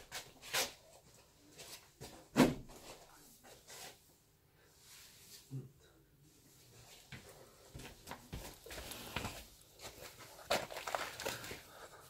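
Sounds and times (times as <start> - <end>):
rustling and scuffing: 0.0 - 4.1, 6.4 - 11.8.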